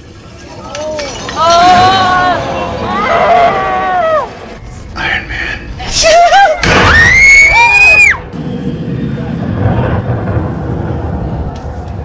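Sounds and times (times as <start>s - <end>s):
low rumbling film soundtrack: 2.3s - 12.0s.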